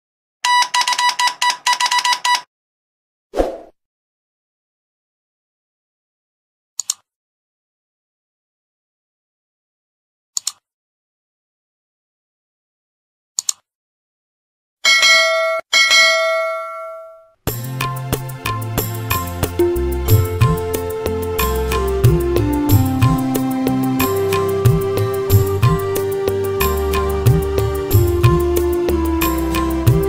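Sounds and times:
electronic ringing beeps: 0:00.5 - 0:02.4
bright bell ding: 0:14.9 - 0:17.3.

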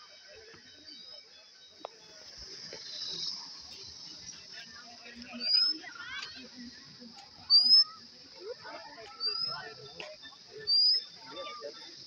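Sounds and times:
steady high-pitched hiss: 0:00.0 - 0:12.0
bird whistling call: 0:10.6 - 0:11.1.

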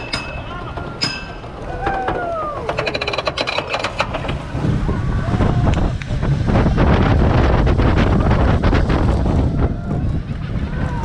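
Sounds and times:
roller coaster lift hill clicks: 0:00.0 - 0:11.0
roller coaster wheels rumbling on track: 0:00.0 - 0:11.0
wind on microphone: 0:01.5 - 0:11.0.

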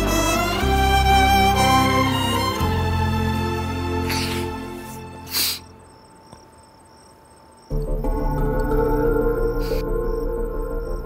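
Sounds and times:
crickets chirping: 0:03.2 - 0:11.0.

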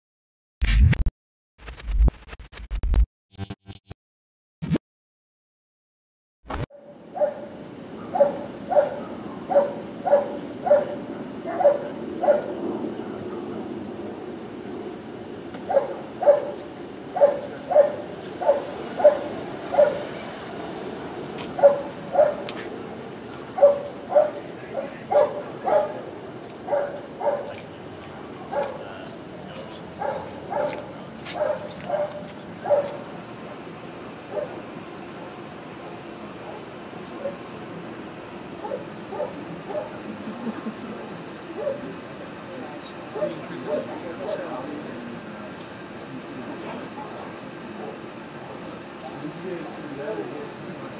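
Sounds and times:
dog barking sharply: 0:07.2 - 0:12.5, 0:15.7 - 0:16.6, 0:17.2 - 0:20.1, 0:21.6 - 0:22.5, 0:23.6 - 0:26.0, 0:26.7 - 0:27.6, 0:28.5 - 0:28.8, 0:30.0 - 0:33.0.

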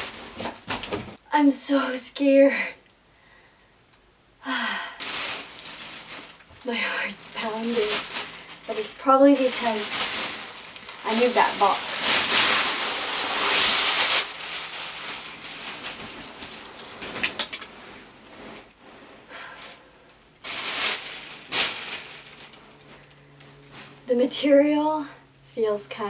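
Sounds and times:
plastic bag and fabric rustling: 0:00.0 - 0:01.2, 0:05.0 - 0:24.2.

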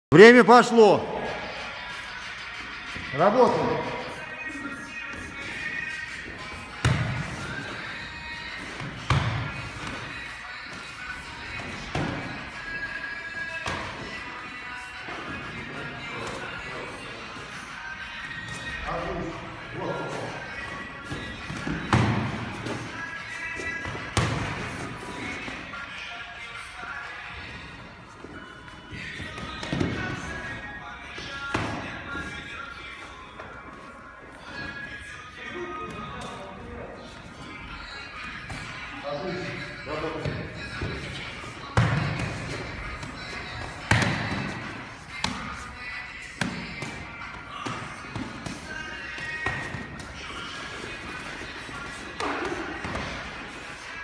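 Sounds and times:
background music: 0:00.1 - 0:54.0
boxing gloves thudding: 0:08.8 - 0:10.0, 0:41.7 - 0:45.5.

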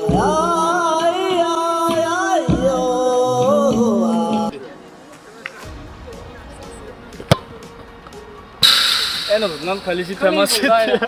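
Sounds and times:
faint background music: 0:00.0 - 0:11.0
loud rushing noise: 0:08.6 - 0:10.6.

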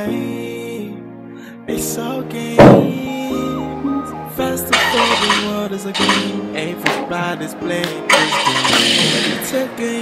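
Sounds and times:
background music with singing: 0:00.0 - 0:10.0
car engine starting: 0:08.1 - 0:09.7.

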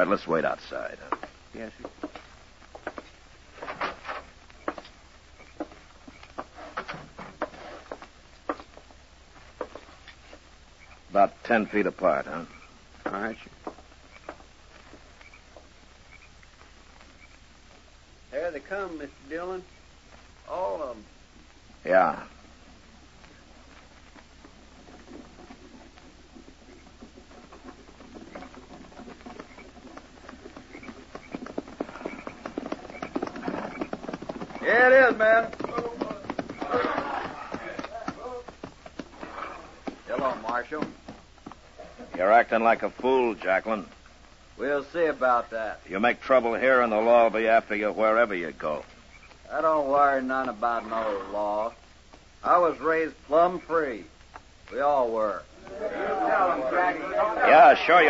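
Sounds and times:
horse hoofbeats: 0:00.0 - 0:58.0
footsteps on wooden boards: 0:00.4 - 0:11.2, 0:11.8 - 0:17.9, 0:22.4 - 0:44.4.

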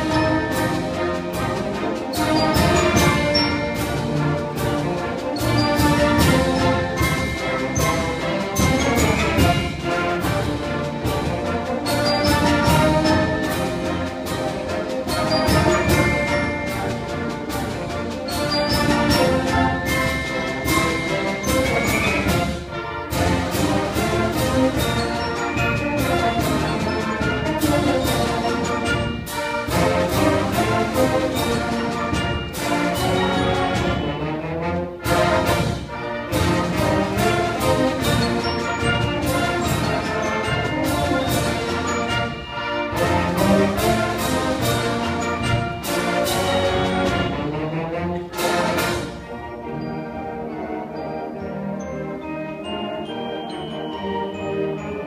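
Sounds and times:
accented percussion strikes: 0:00.0 - 0:50.2
concert band playing: 0:00.0 - 0:55.0.

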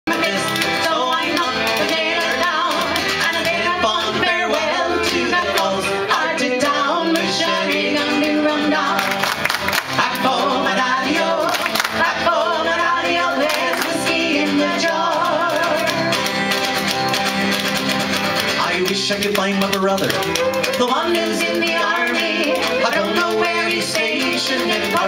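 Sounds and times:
voices singing: 0:00.1 - 0:17.1, 0:18.5 - 0:25.0
acoustic guitar: 0:00.1 - 0:25.0
fiddle: 0:00.1 - 0:25.0.

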